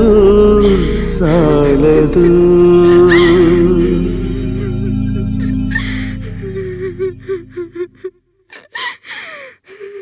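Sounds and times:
woman crying with sobs: 2.1 - 10.0.

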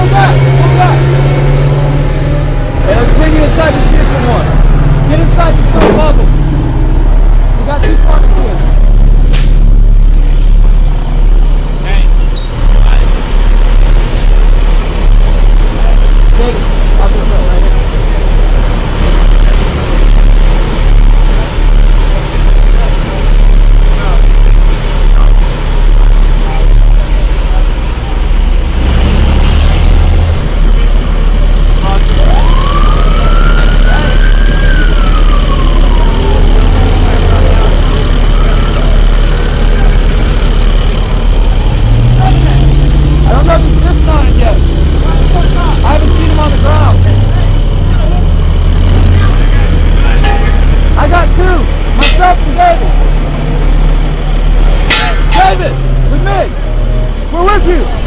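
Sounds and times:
heavy vehicle engine rumbling: 0.0 - 58.0
siren-like wail: 31.8 - 41.4.

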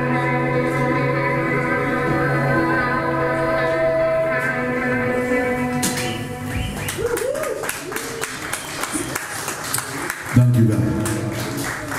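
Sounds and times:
audience clapping: 5.9 - 11.9
audience cheering and whooping: 6.5 - 9.5.

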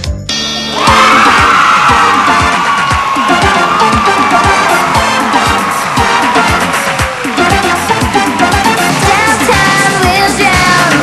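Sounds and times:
audience cheering: 0.7 - 9.9
upbeat pop song with drum beat: 0.8 - 11.0.

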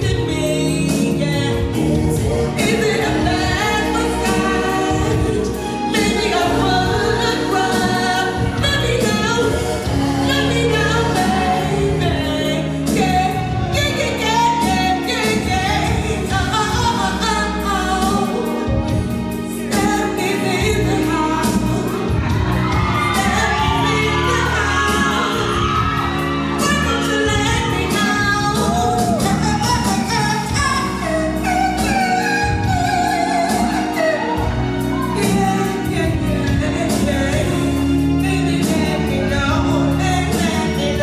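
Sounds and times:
live band playing: 0.0 - 41.0
woman singing: 0.0 - 41.0.

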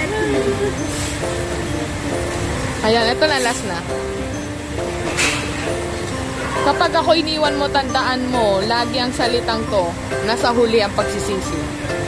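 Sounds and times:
restaurant background rumble: 0.0 - 12.0
person's sing-song voice: 6.5 - 12.0.

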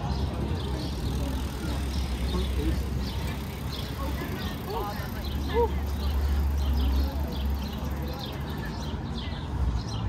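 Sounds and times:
low city rumble: 0.0 - 10.0
passersby talking: 0.0 - 10.0.

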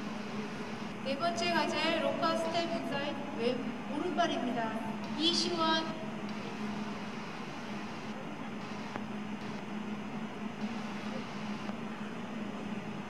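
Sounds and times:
faint high whine: 0.0 - 13.0
steady low hum: 0.0 - 13.0.

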